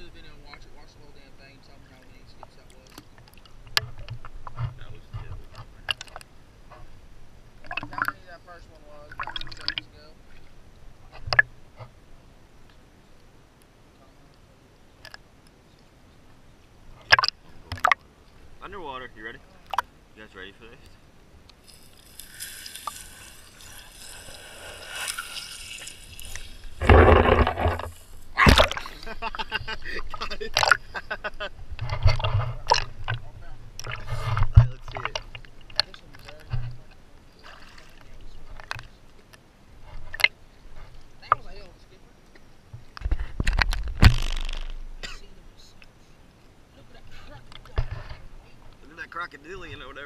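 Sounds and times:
river water gurgling and sloshing: 0.0s - 46.8s
swimmer splashing: 21.6s - 30.9s.

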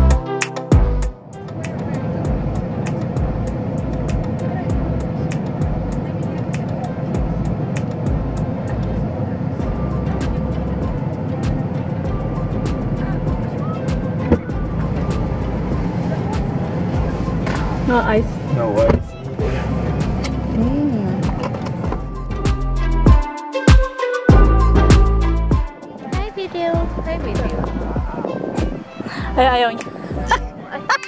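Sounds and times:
background music: 0.0s - 6.2s, 7.2s - 31.0s
truck road and cabin noise: 0.0s - 23.2s, 24.3s - 31.0s
indistinct voices: 1.4s - 22.4s, 25.8s - 31.0s.

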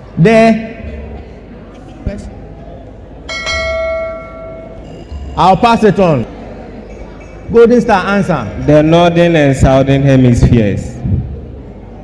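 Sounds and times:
bell ringing: 3.3s - 5.9s.

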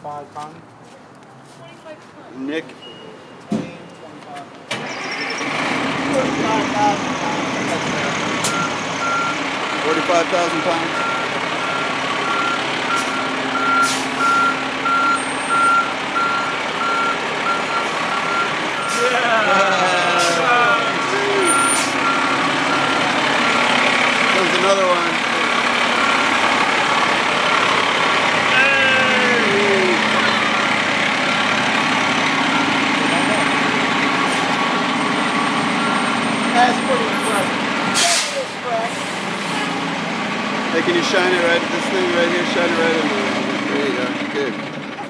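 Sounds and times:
truck engine running: 4.8s - 45.0s
reversing alarm beeping: 8.4s - 9.4s, 10.8s - 19.5s, 20.4s - 23.7s, 32.4s - 38.1s.

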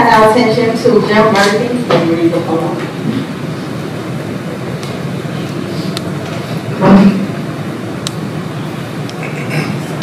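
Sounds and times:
low background noise: 0.0s - 10.0s.

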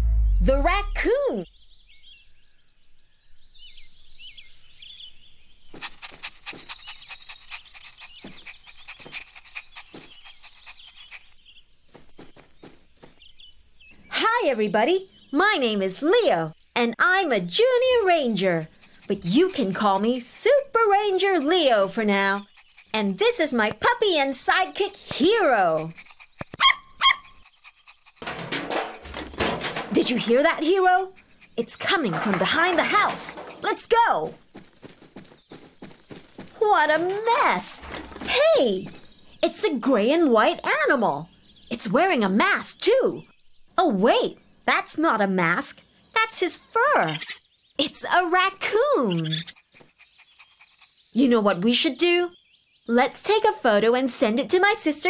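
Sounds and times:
small birds chirping: 0.7s - 55.0s
cartoon puppy yip: 26.6s - 27.2s
animal rummaging through trash bin: 28.2s - 30.6s, 31.6s - 39.2s.

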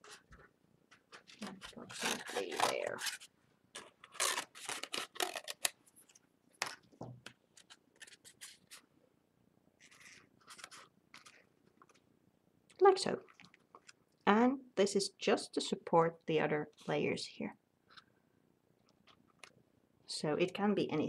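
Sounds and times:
scissors snipping paper: 1.1s - 3.2s, 3.8s - 5.7s.

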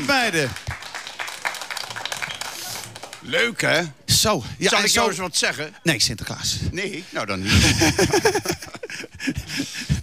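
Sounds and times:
children applauding: 0.0s - 3.3s.

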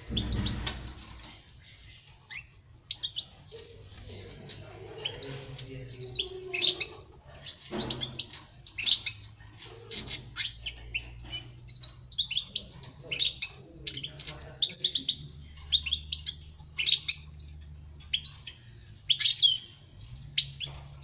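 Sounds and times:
bird twittering song: 0.0s - 3.8s, 4.6s - 21.0s.

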